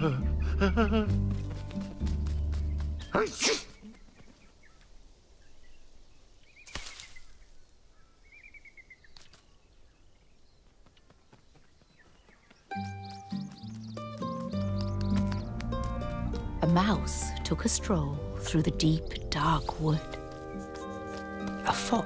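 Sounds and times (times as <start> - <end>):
gentle music: 0.0 - 3.4, 12.7 - 22.0
faint bird chirps: 3.0 - 15.5.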